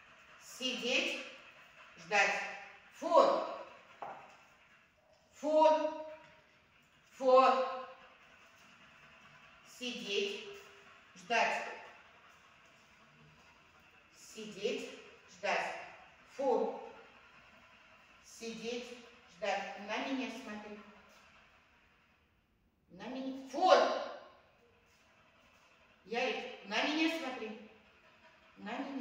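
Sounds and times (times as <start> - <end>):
woman speaking: 0.5 - 1.2, 2.0 - 3.6, 5.4 - 6.1, 7.2 - 7.7, 9.7 - 10.5, 11.2 - 11.7, 14.2 - 16.9, 18.3 - 20.9, 22.9 - 24.0, 26.1 - 27.6, 28.6 - 29.0.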